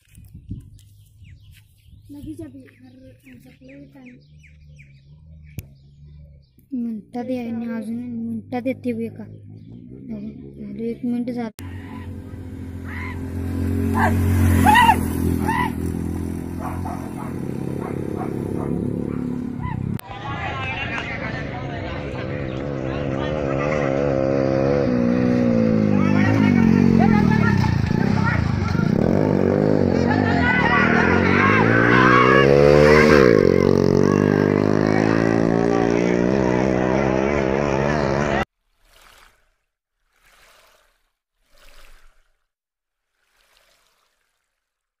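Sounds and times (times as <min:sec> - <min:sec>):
motorcycle engine revving: 0:03.1 - 0:38.5
people shouting: 0:11.6 - 0:16.1, 0:30.0 - 0:37.4.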